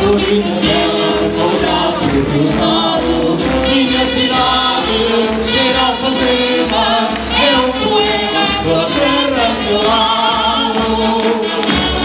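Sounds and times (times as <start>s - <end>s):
choir singing: 0.0s - 12.0s
musical accompaniment: 0.0s - 12.0s.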